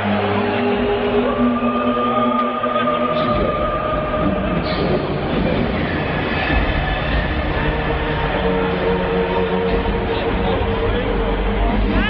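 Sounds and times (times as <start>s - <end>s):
hardstyle dance music: 0.0s - 12.0s.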